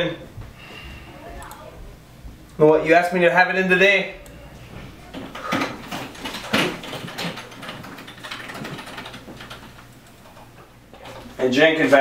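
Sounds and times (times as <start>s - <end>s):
low room hum: 0.0s - 12.0s
computer keyboard typing: 5.2s - 11.3s.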